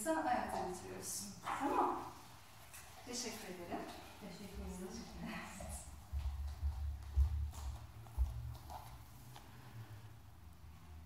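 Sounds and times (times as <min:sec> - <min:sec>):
barefoot footsteps on wooden floor: 0:03.8 - 0:09.6.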